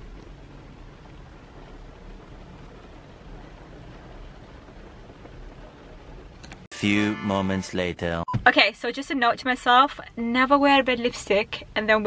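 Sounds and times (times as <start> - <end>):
rain hissing on car: 0.0 - 6.5
car engine rumble: 0.0 - 6.7.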